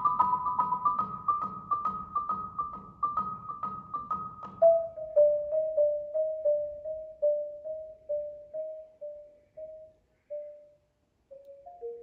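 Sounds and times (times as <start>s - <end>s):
marimba notes: 0.0s - 10.7s, 11.3s - 12.0s.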